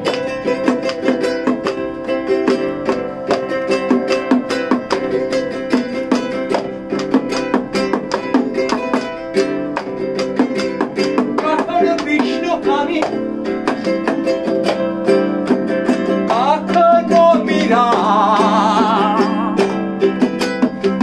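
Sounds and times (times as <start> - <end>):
frame drum beat: 0.0 - 21.0
nylon-string guitar strummed: 0.0 - 21.0.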